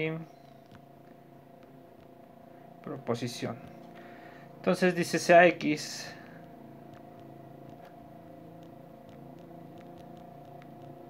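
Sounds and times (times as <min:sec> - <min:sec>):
faint background hum: 0:00.0 - 0:11.0
stylus ticking on tablet screen: 0:00.3 - 0:11.0.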